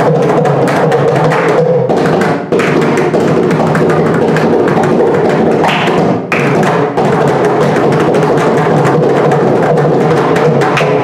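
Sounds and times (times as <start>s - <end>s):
hand drums playing fast strokes: 0.0s - 11.0s.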